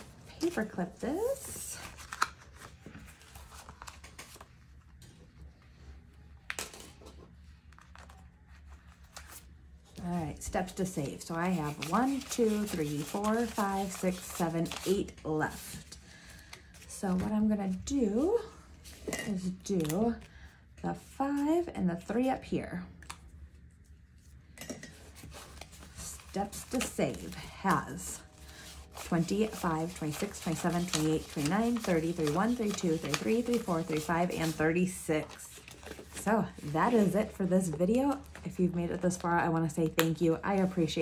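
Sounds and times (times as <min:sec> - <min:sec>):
paper rustling: 0:00.0 - 0:09.5, 0:11.0 - 0:17.3, 0:24.9 - 0:38.5
low steady hum: 0:00.0 - 0:41.0.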